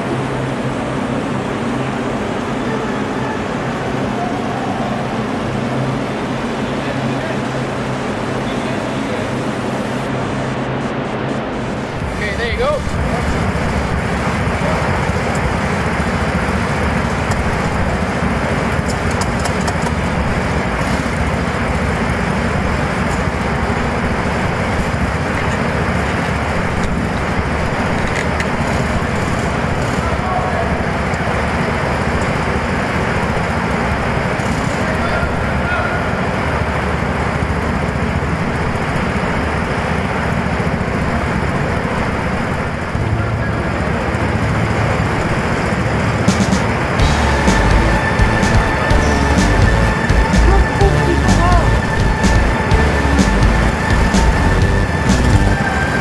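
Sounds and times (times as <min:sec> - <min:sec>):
go-karts running: 0:00.0 - 0:10.1, 0:11.9 - 0:56.0
voices: 0:00.0 - 0:19.1, 0:29.4 - 0:32.0, 0:34.8 - 0:36.5, 0:46.3 - 0:56.0
low hum: 0:47.0 - 0:56.0.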